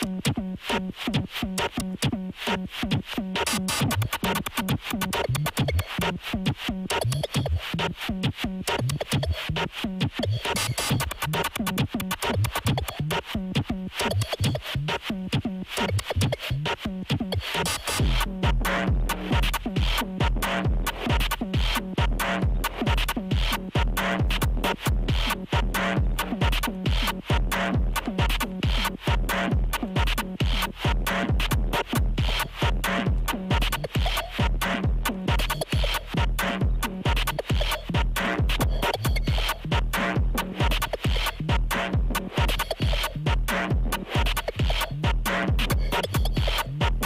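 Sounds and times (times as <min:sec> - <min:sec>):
electronic dance music: 0:00.0 - 0:47.0
hi-hat ticks: 0:00.0 - 0:47.0
techno kick drum: 0:00.0 - 0:47.0.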